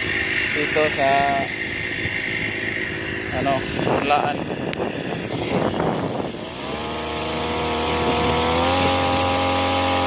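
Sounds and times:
small engine droning with whine: 0:00.0 - 0:10.0.

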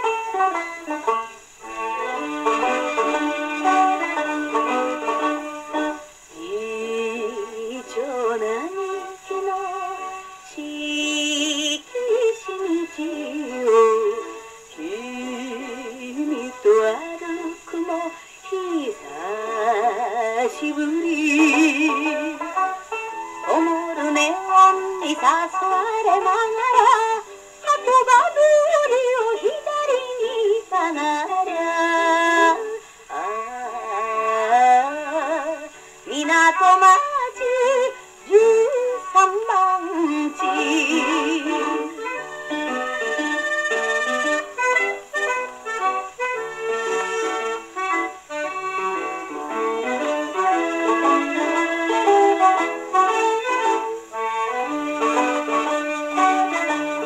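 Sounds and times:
orchestra: 0:00.0 - 0:57.0
record surface hiss: 0:00.0 - 0:57.0
woman singing: 0:01.6 - 0:22.6, 0:23.4 - 0:44.4, 0:49.0 - 0:57.0.

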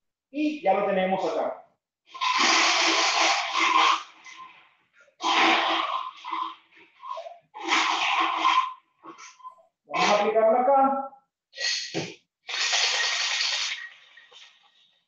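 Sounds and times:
ice rattling in cocktail shaker: 0:12.5 - 0:14.5.

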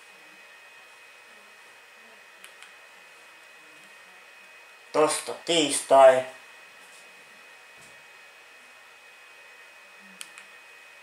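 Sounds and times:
projector fan hiss with whine: 0:00.0 - 0:11.0
small click: 0:02.4 - 0:02.7, 0:10.2 - 0:10.5.

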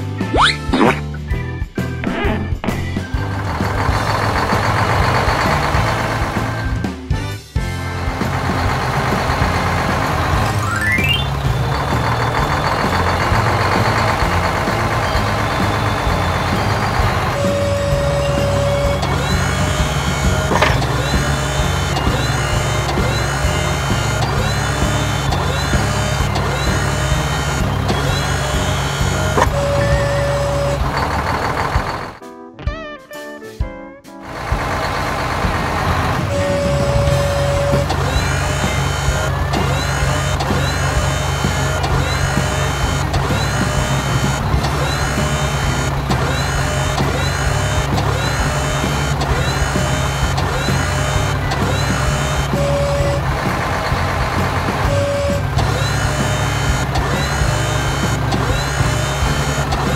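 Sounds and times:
cartoon truck engine: 0:00.0 - 0:32.2, 0:34.2 - 0:59.9
background music: 0:00.0 - 0:59.9.

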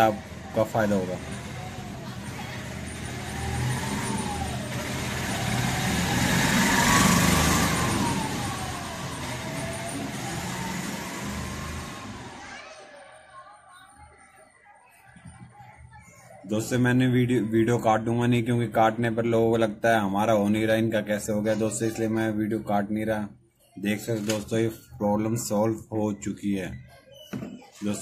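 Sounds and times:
road vehicle passing: 0:00.0 - 0:12.6.

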